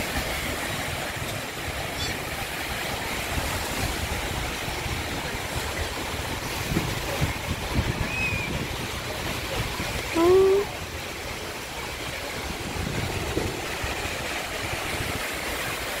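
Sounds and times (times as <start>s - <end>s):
waves washing up a beach: 0.0s - 16.0s
wind rumbling on microphone: 0.0s - 16.0s.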